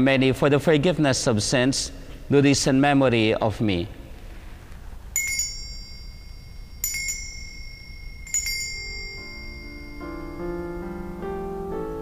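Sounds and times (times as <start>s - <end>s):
altar bells ringing: 5.2s - 11.4s
soft keyboard music: 8.4s - 12.0s.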